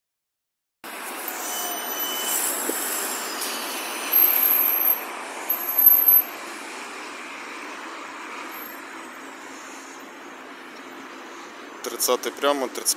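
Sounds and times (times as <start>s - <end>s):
street traffic: 0.8s - 12.9s
trolleybus passing: 0.8s - 12.9s.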